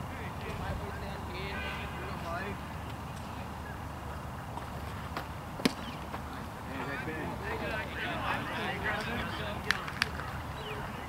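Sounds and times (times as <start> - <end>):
murmur of voices: 0.0 - 11.0
baseball striking home plate: 5.6 - 5.9.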